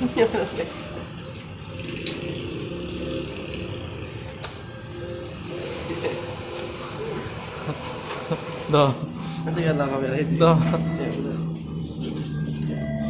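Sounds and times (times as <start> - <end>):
faint music: 0.0 - 13.0
even rumble: 1.7 - 5.3.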